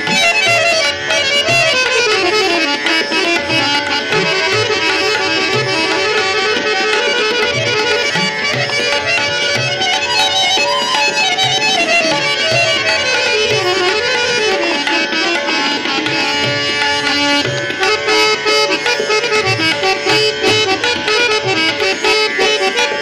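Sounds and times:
harmonium melody: 0:00.0 - 0:23.0
tabla strokes: 0:00.0 - 0:23.0.

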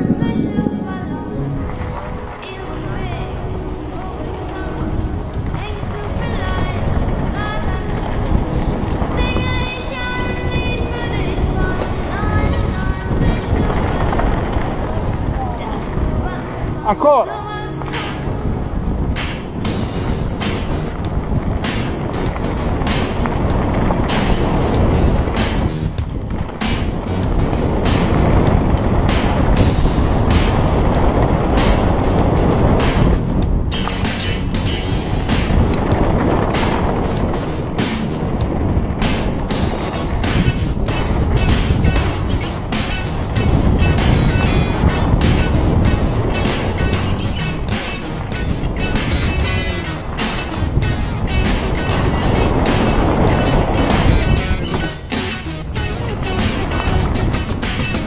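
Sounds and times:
wind rushing over camera: 0:00.0 - 0:58.0
mountain bike rattling on dirt trail: 0:17.8 - 0:58.0.

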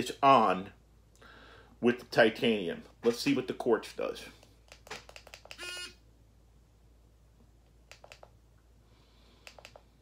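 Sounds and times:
short buzzing tone: 0:05.6 - 0:06.0.

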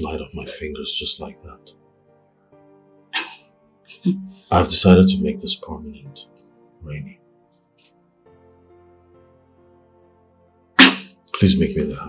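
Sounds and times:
soft sustained background music: 0:00.0 - 0:12.0.

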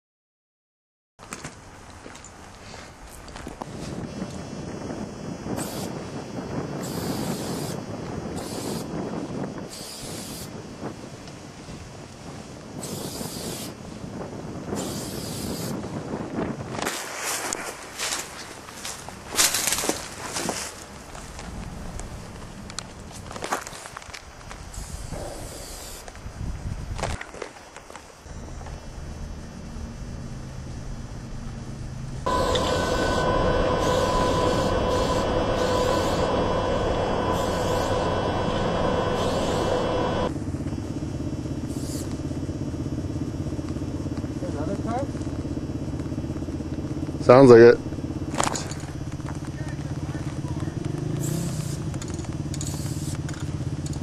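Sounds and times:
spray paint can hissing: 0:05.6 - 0:06.0, 0:06.8 - 0:07.8, 0:08.4 - 0:08.9, 0:09.7 - 0:10.5, 0:12.8 - 0:13.8, 0:14.8 - 0:15.8, 0:24.7 - 0:26.1, 0:39.1 - 0:39.7, 0:41.7 - 0:42.1, 0:51.2 - 0:51.9, 0:52.6 - 0:53.3
rustling and handling noise: 0:16.8 - 0:21.6.

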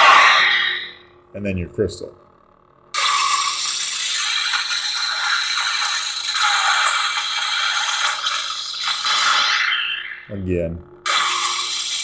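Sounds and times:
lightsaber crackling: 0:03.0 - 0:10.4.

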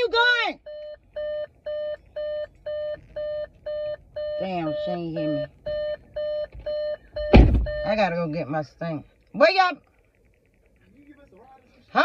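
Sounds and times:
car warning chime beeping: 0:00.0 - 0:08.5.

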